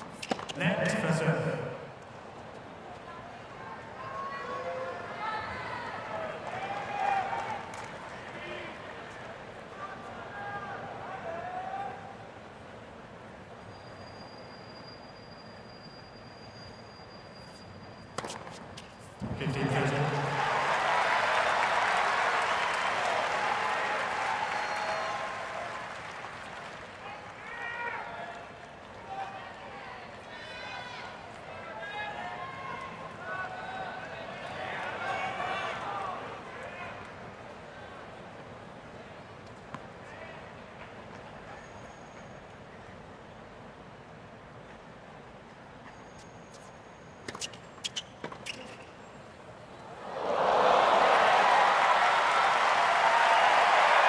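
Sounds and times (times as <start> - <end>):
tennis ball strikes: 0.0 - 0.6, 18.2 - 19.4
crowd applause and cheering: 19.5 - 28.0, 50.0 - 54.0.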